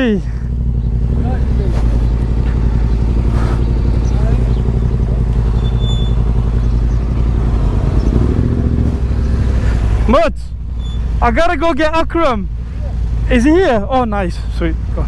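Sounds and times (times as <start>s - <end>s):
motorcycle engine idling low: 0.0s - 9.6s.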